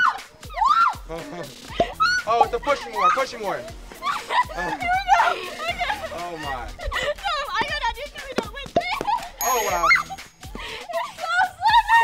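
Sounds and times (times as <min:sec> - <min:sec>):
background music: 0:00.0 - 0:12.0
woman squealing and shrieking: 0:00.5 - 0:01.0.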